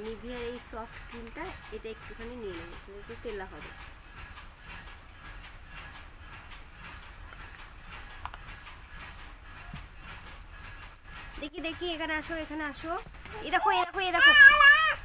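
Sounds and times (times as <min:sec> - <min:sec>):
woman speaking: 0:00.0 - 0:03.8, 0:11.4 - 0:15.0.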